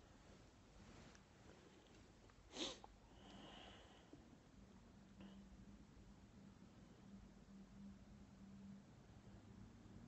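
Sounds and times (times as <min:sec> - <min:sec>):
person sniffing: 0:02.5 - 0:03.8.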